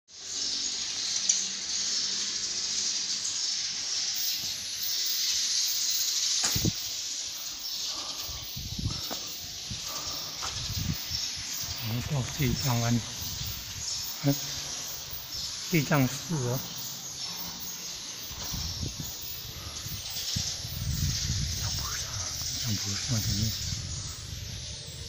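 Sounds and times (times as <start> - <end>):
high-pitched hiss: 0.1 - 25.0.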